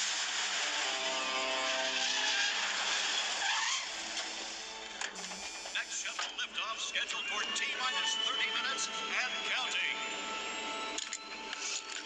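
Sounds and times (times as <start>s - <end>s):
music: 0.5s - 2.2s, 3.8s - 12.0s.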